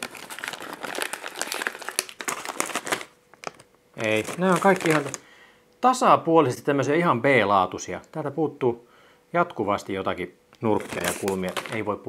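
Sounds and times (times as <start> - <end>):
plastic packaging crinkling: 0.0 - 5.3, 10.7 - 12.0.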